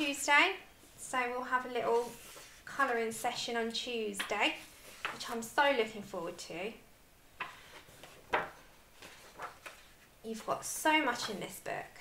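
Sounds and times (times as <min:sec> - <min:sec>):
paper pages tapping: 0:07.4 - 0:09.9.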